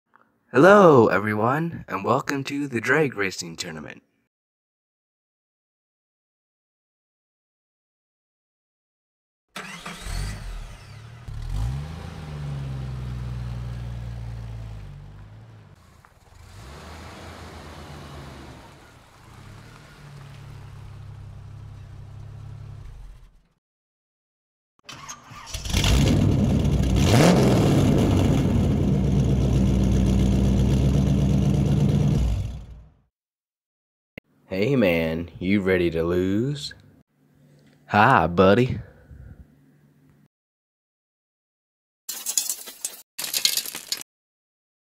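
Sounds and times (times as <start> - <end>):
louder car engine revving: 9.6 - 22.8, 25.7 - 32.9
car engine starting and revving: 9.6 - 23.5, 24.9 - 33.0.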